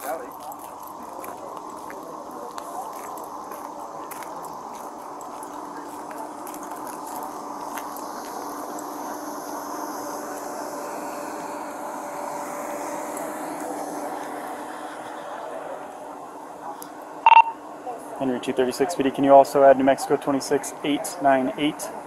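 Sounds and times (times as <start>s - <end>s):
vehicle engines idling: 0.0s - 22.0s.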